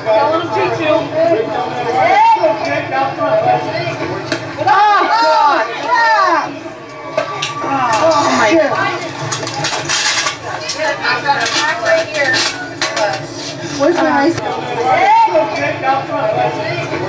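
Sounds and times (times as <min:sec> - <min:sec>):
onlookers chattering: 0:00.0 - 0:17.0.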